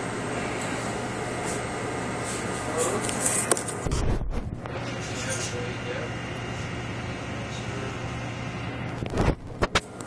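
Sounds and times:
low rumbling thump: 0:03.8 - 0:04.6.

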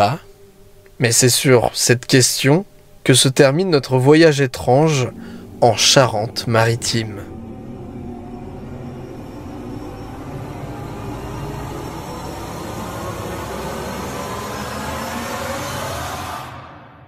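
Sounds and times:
dark eerie ambient drone: 0:00.0 - 0:17.0.

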